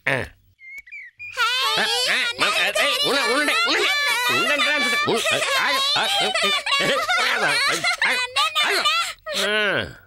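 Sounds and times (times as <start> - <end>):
children calling out excitedly: 1.4 - 9.1.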